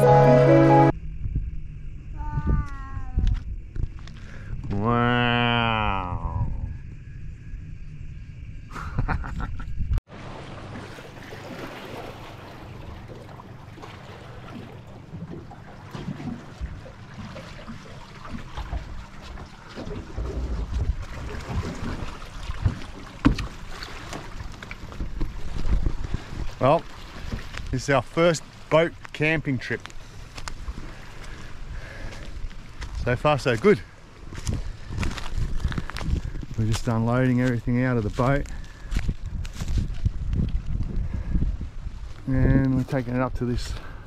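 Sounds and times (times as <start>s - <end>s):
water wash rushing: 10.1s - 29.8s
outboard motor running: 10.1s - 36.5s.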